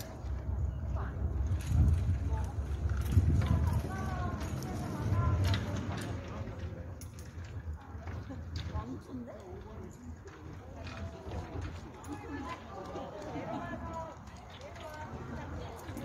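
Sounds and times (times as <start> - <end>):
people talking in background: 0.0 - 16.0.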